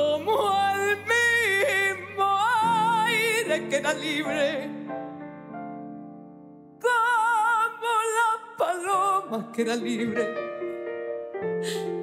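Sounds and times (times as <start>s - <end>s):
woman singing with vibrato: 0.0s - 4.7s, 6.8s - 10.2s
piano accompaniment: 0.0s - 12.0s.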